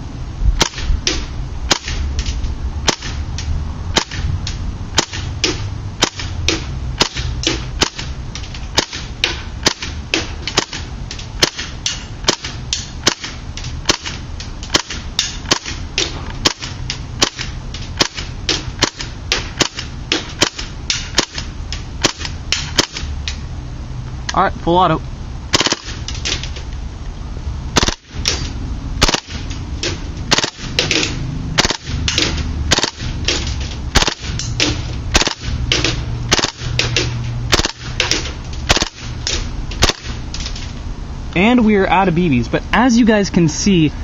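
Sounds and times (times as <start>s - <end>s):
airsoft gun single shots: 27.8s - 29.5s.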